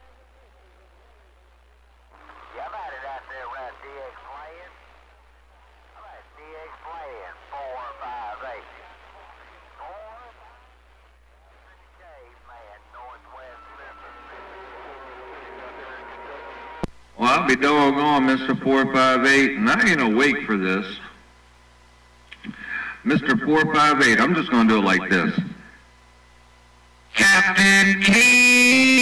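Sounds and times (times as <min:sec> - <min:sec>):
faint steady tones: 0:00.0 - 0:29.0
warbly voice over radio speaker: 0:02.1 - 0:04.9, 0:05.9 - 0:10.7, 0:11.4 - 0:21.2, 0:22.4 - 0:25.8, 0:27.2 - 0:29.0
radio operator speaking: 0:02.1 - 0:21.3, 0:22.3 - 0:25.9, 0:27.1 - 0:28.4
low hum: 0:10.6 - 0:27.1
sharp click: 0:22.3 - 0:22.6.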